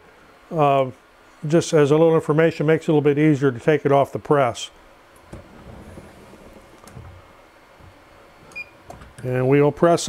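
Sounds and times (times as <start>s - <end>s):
faint knocks and rustling: 5.2s - 9.3s.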